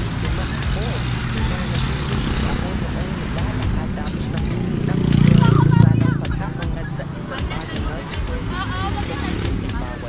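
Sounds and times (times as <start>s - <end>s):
faint voices: 0.0s - 10.0s
road traffic rumble: 0.0s - 10.0s.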